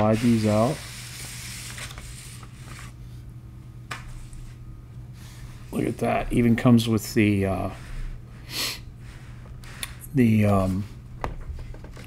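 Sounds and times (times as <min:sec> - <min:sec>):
paper rustling and sliding: 0:00.0 - 0:03.2
low steady hum: 0:00.0 - 0:12.0.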